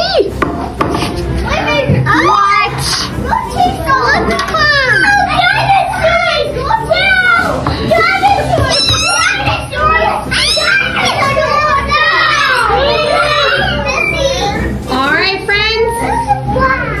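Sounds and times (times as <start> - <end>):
toddlers chattering: 1.0 - 17.0.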